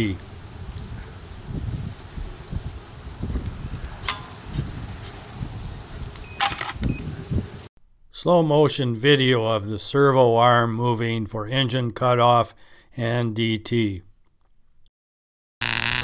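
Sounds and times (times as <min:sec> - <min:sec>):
wind on microphone: 0:00.2 - 0:07.7
servo whirring buzz: 0:15.6 - 0:16.0.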